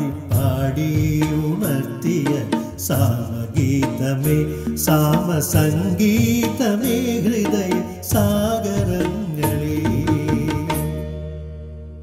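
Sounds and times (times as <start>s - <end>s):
man singing into a microphone: 0.0s - 11.1s
instrumental accompaniment: 0.0s - 12.0s.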